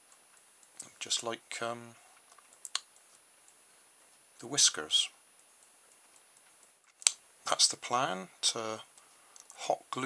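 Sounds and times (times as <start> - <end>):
faint light ticks: 0.1 - 1.0.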